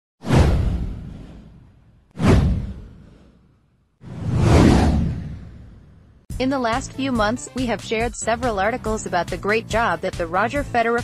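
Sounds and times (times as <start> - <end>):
deep low boom: 0.3 - 3.2, 4.1 - 6.2
downward swoosh: 4.0 - 6.0.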